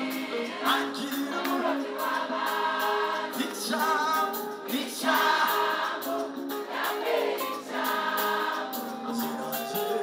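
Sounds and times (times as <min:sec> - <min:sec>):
band playing gospel music: 0:00.0 - 0:10.0
choir singing held notes: 0:00.0 - 0:10.0.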